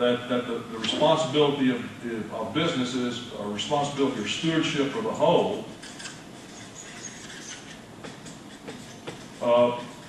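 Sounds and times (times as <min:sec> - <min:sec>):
room noise: 0:00.0 - 0:10.0
marker pen scratching on paper: 0:05.7 - 0:10.0.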